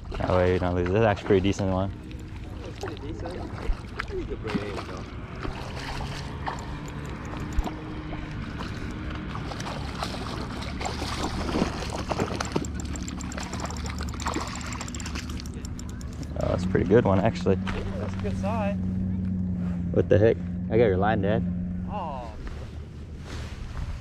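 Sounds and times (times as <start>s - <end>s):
fish splashing in water: 0.0s - 16.5s
low hum: 0.0s - 24.0s.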